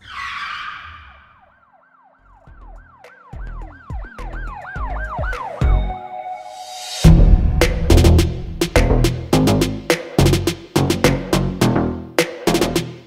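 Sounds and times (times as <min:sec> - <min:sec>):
electronic siren-like yelp: 0:00.0 - 0:06.6
whoosh: 0:06.5 - 0:09.6
deep bass hits: 0:07.0 - 0:11.8.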